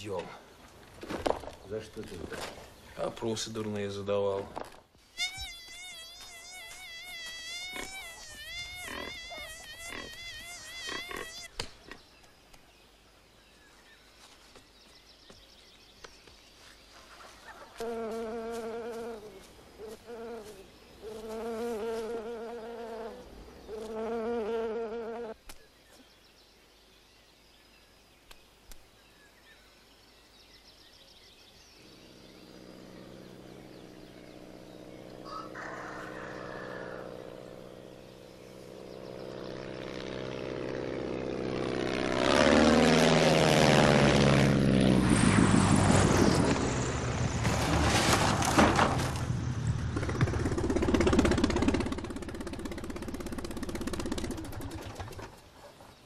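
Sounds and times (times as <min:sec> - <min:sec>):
propeller plane engine passing: 0:31.8 - 0:55.4.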